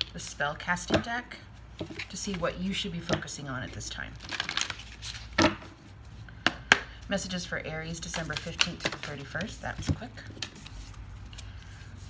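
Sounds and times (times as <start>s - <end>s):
cards shuffling: 4.2s - 5.8s, 7.9s - 12.0s.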